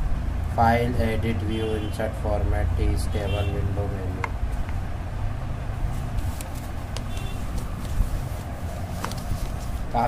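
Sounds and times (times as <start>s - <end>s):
paper page turning: 6.1s - 9.8s.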